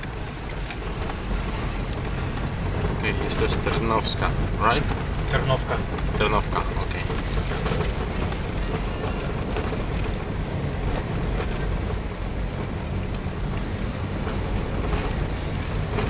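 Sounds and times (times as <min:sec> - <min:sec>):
car driving on gravel: 0:00.0 - 0:16.0.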